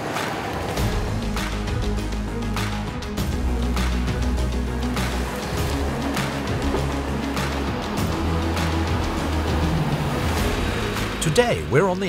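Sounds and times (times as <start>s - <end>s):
background music: 0.0s - 12.0s
harvester engine droning: 0.0s - 12.0s.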